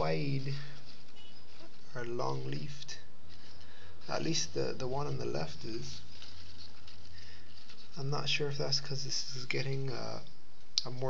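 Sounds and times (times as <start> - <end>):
lettuce leaves rustling: 0.0 - 10.2.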